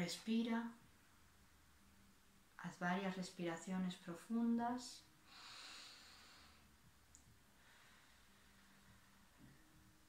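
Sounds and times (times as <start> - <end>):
woman breathing deeply: 5.2 - 6.8, 7.5 - 9.6.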